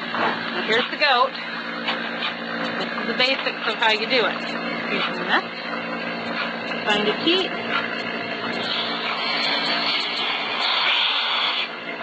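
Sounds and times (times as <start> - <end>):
vacuum pump humming: 0.0 - 12.0
air hissing into teat cup: 8.6 - 11.8.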